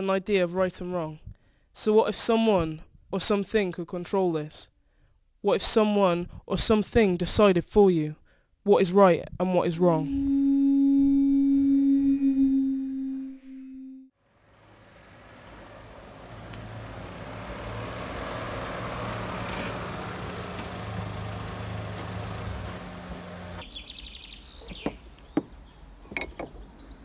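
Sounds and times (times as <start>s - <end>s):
loud synthesized tone: 10.0s - 14.1s
outdoor noise: 14.1s - 27.0s
car engine running: 14.4s - 23.6s.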